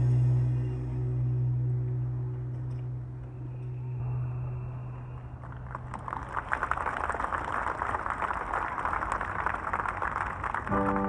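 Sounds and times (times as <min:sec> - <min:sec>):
audience applauding: 0:05.3 - 0:11.0.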